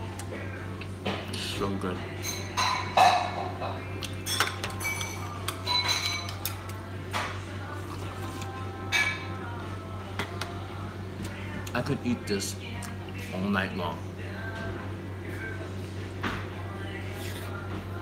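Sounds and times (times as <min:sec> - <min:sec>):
steady low hum: 0:00.0 - 0:18.0
chopsticks and bowls clinking: 0:02.2 - 0:06.6.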